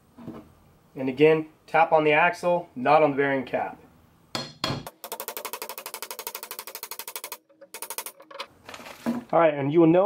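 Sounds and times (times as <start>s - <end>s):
hammer tapping on steel: 4.4s - 8.2s.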